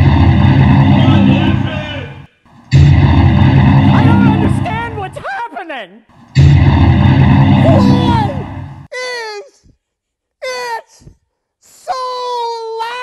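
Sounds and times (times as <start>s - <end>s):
deep trailer-style blasts: 0.0s - 5.2s, 6.2s - 8.9s.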